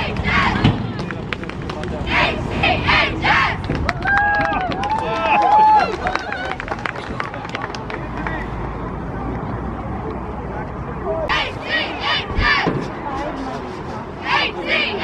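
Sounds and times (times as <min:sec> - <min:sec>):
outdoor chatter and crowd noise: 0:00.0 - 0:15.0.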